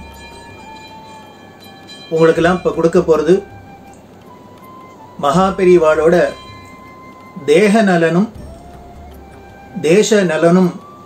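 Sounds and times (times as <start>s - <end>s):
low steady hiss: 0.0s - 11.0s
soft background music: 0.0s - 11.0s.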